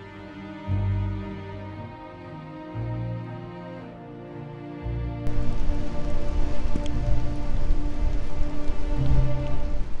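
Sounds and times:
slow background music: 0.0s - 10.0s
rain: 5.2s - 10.0s
wind on microphone: 5.3s - 10.0s.

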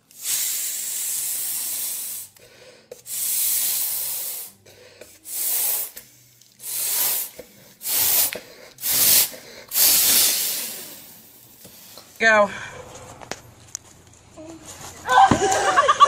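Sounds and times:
loud hissing bursts of air: 0.0s - 2.4s, 3.0s - 4.6s, 5.2s - 12.2s.

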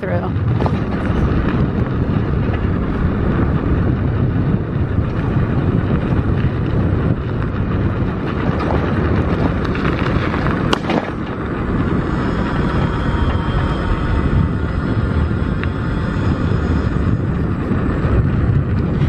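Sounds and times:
tyres rolling on asphalt: 0.0s - 19.0s
wind buffeting microphone: 0.0s - 19.0s.

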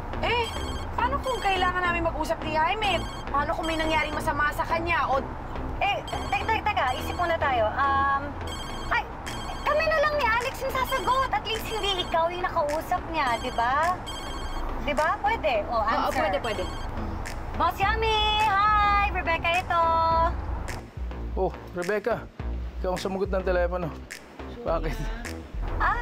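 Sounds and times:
women talking: 0.2s - 5.2s, 5.8s - 14.0s, 14.8s - 16.9s, 17.6s - 20.4s, 25.0s - 26.0s
mobile phone ringtone: 0.3s - 1.8s, 2.8s - 4.2s, 6.0s - 7.4s, 8.4s - 10.3s, 10.9s - 12.2s, 13.2s - 14.8s, 16.0s - 16.9s.

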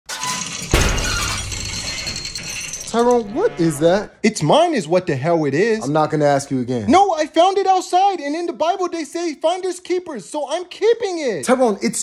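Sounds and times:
cartoon crash: 0.1s - 4.1s
clattering and rattling: 0.1s - 4.1s.

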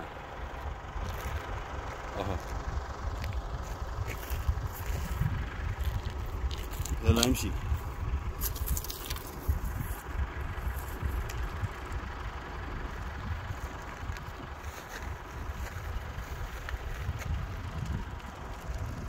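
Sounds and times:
wind buffeting microphone: 0.8s - 19.0s.

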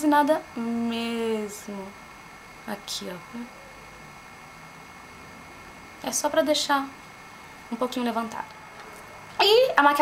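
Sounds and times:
low hiss of recording noise: 0.0s - 10.0s.

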